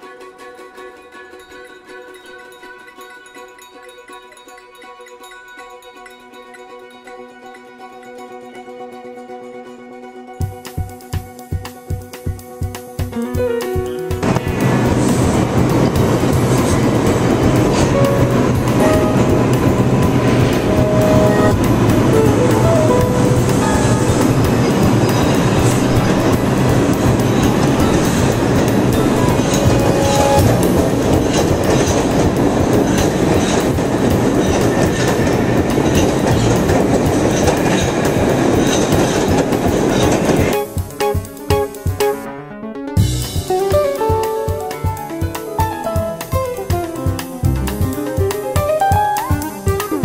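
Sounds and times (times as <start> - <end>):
subway train wheels rumbling: 12.6 - 42.2, 43.0 - 50.0.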